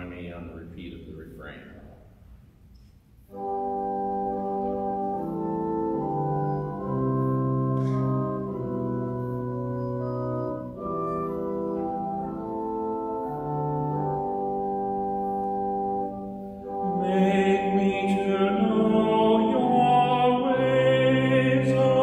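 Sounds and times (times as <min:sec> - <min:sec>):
church organ playing chords: 0:03.2 - 0:22.0.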